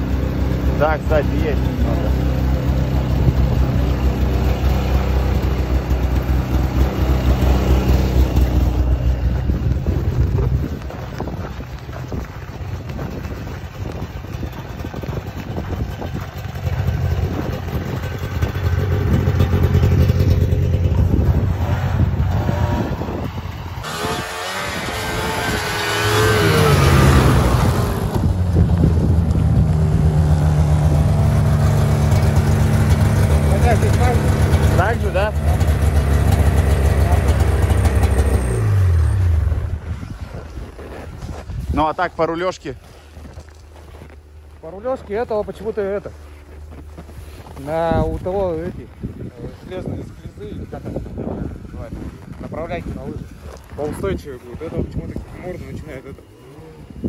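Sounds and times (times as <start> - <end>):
snowmobile engine running: 0.0 - 57.0.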